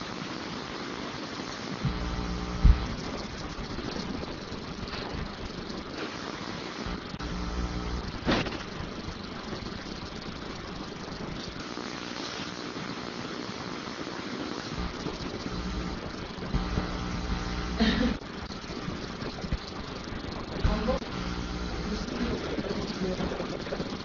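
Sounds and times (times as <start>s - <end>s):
background hiss: 0.0s - 24.0s
low electrical hum: 0.0s - 24.0s.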